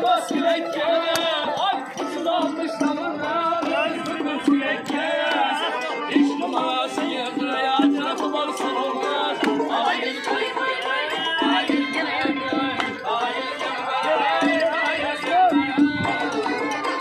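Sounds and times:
accordion: 0.0s - 17.0s
percussive beats: 0.0s - 17.0s
strummed lutes: 0.0s - 17.0s.

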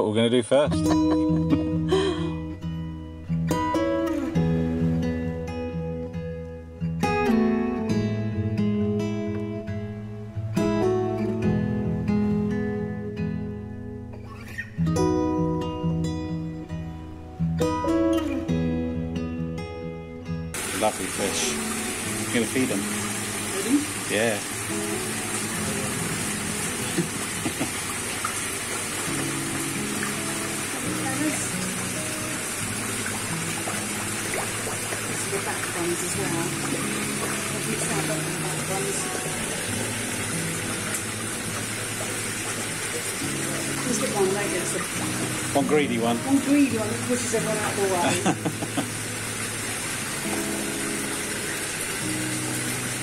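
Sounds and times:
background music sustained notes: 0.5s - 53.0s
waterfall splashing into pond: 20.5s - 53.0s
fish churning water surface: 32.3s - 45.7s.

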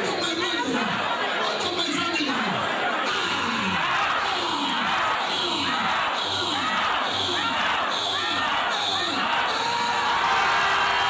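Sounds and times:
congregation shouting and praying: 0.0s - 11.0s.

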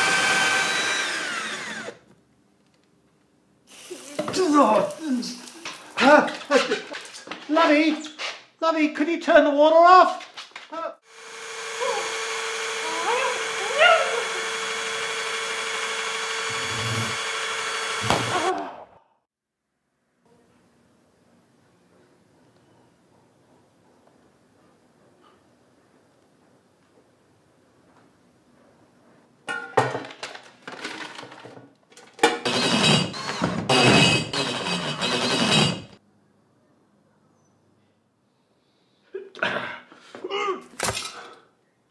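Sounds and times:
electric power drill running: 0.0s - 2.0s, 11.0s - 18.6s, 32.4s - 36.0s.

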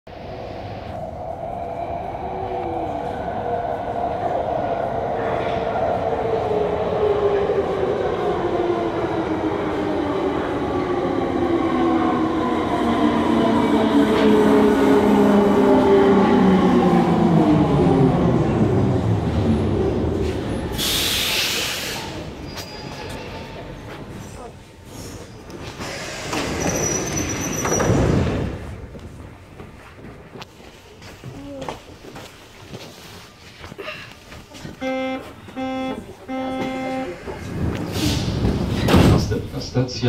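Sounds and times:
metro train arriving and braking: 0.1s - 40.0s.

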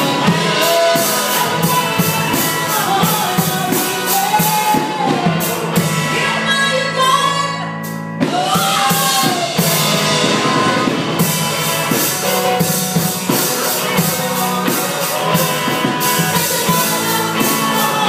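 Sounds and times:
woman singing lead vocal: 0.0s - 5.5s, 6.1s - 11.1s, 13.8s - 18.0s
drum kit with cymbal hits: 0.0s - 18.0s
electric guitar: 0.0s - 18.0s
keyboard: 0.0s - 18.0s.

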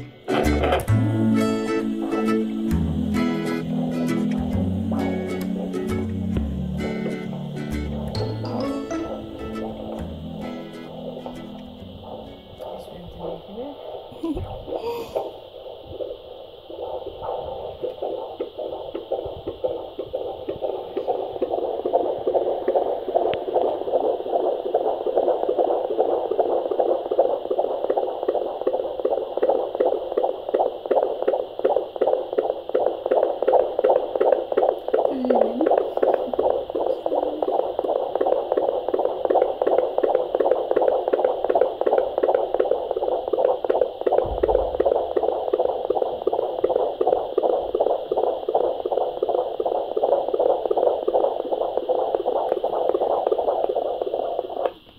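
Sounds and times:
fetal heartbeat whooshing pulse: 0.0s - 54.9s.

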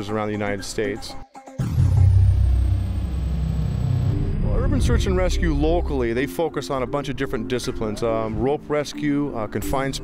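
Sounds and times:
machinery rumbling: 1.6s - 6.2s.

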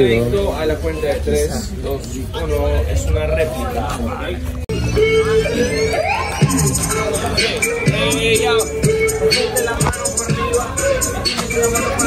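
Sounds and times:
bass line: 4.7s - 12.0s
instrumental hip-hop beat: 4.7s - 12.0s.

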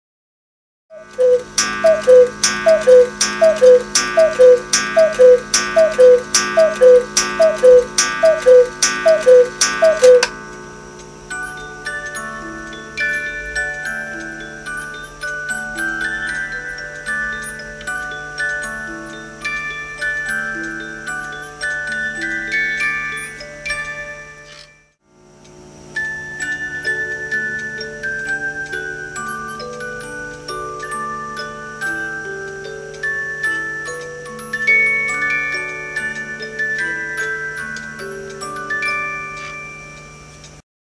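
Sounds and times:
cuckoo clock calls: 0.9s - 40.6s
music box melody: 0.9s - 40.6s
bellows click: 1.1s - 10.4s.

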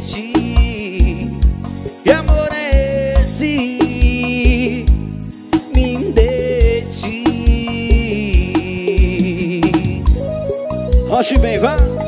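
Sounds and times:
steady drum beat: 3.9s - 9.7s
sustained melodic lines: 5.6s - 7.9s.

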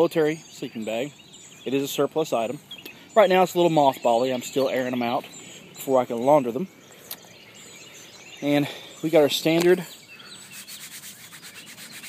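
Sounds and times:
hand rubbing nylon fabric: 10.3s - 12.0s.

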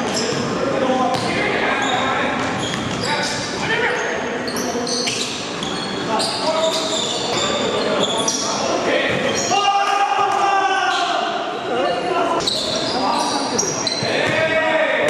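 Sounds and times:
sneaker squeaks on floor: 0.0s - 9.6s, 12.4s - 14.4s
basketball bouncing on court: 1.1s - 1.4s
players shouting: 8.1s - 11.6s.

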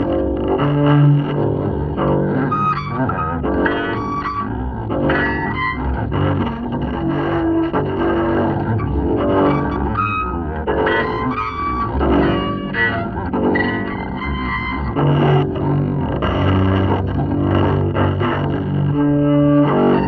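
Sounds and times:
double bass improvisation: 0.0s - 20.0s.

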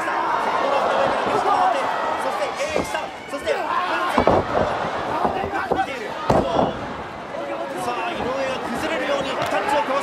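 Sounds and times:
crowd shouting: 0.0s - 10.0s.

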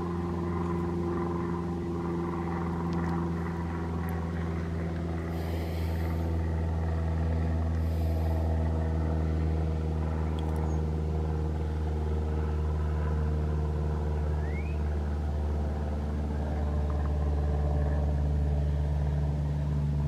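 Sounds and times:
vehicle engine idling: 0.0s - 20.0s.

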